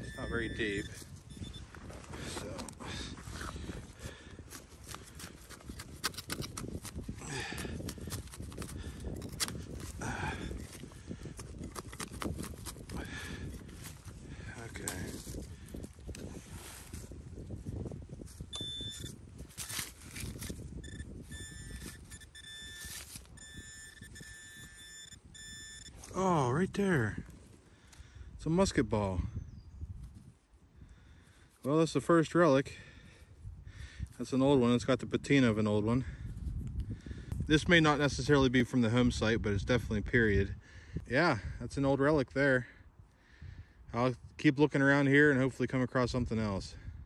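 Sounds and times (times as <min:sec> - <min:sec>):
metal detector tone: 0:00.0 - 0:02.6, 0:18.5 - 0:19.2, 0:20.3 - 0:26.2
hand tool digging in soil: 0:02.2 - 0:17.1, 0:18.3 - 0:26.2.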